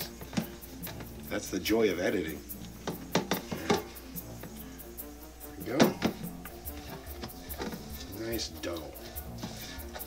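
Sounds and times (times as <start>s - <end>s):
hands working dough in metal bowl: 0.0s - 4.6s, 5.6s - 10.0s
background music: 0.0s - 10.0s.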